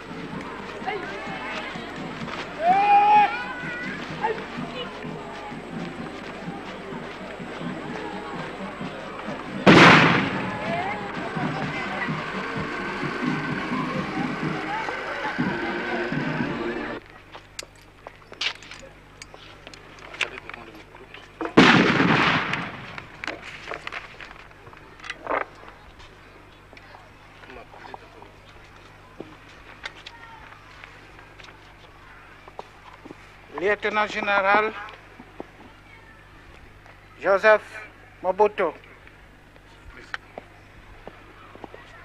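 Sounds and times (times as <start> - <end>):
music: 0.0 - 17.0
murmur of voices: 0.0 - 42.0
loud bangs: 9.5 - 17.0, 21.6 - 23.2.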